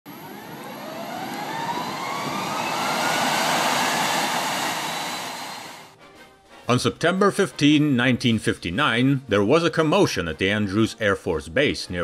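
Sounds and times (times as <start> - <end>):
aircraft engine rushing noise: 0.1 - 5.9
aircraft engine whine rising: 0.1 - 6.0.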